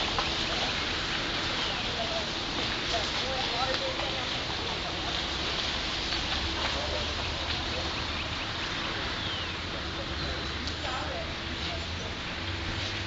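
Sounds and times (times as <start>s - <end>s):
faint voices murmuring: 0.0s - 13.0s
steady hiss: 0.0s - 13.0s.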